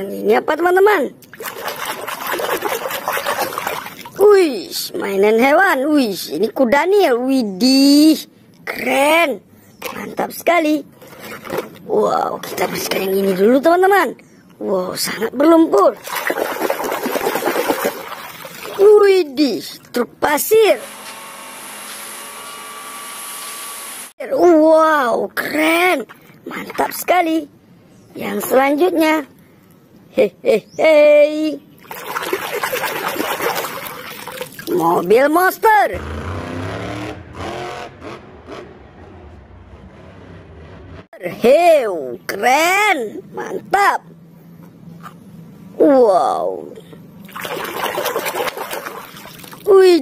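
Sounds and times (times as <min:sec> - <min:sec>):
water splashing and sloshing: 0:01.2 - 0:04.4, 0:10.9 - 0:13.5, 0:15.7 - 0:19.1, 0:25.5 - 0:27.3, 0:31.7 - 0:37.3, 0:47.2 - 0:50.0
truck engine revving: 0:35.9 - 0:41.1.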